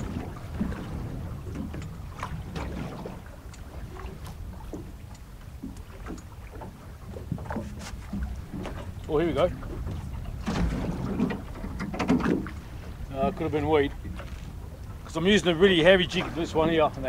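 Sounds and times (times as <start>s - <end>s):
water against boat hull: 0.0s - 17.0s
wind on microphone: 0.0s - 17.0s
fishing tackle knocks and clicks: 9.8s - 12.6s.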